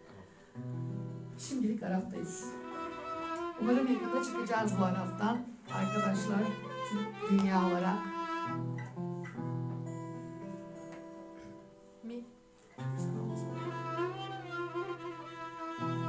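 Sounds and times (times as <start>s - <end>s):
acoustic guitar playing: 0.0s - 16.0s
violin bowed notes: 1.9s - 9.4s, 12.8s - 16.0s.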